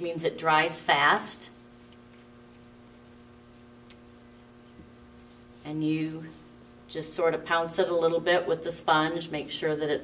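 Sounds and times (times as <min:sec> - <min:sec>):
faint electrical mains hum: 0:00.0 - 0:10.0.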